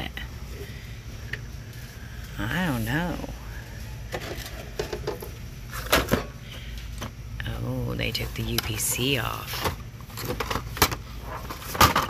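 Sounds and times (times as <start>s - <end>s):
objects knocking and rattling on shelf: 4.1s - 6.3s, 9.6s - 12.0s.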